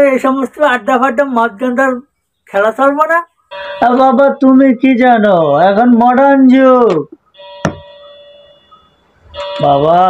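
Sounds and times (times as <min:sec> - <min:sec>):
bell-like ringing tones: 0:03.3 - 0:06.1, 0:07.2 - 0:10.0
sharp tap: 0:06.9 - 0:07.8.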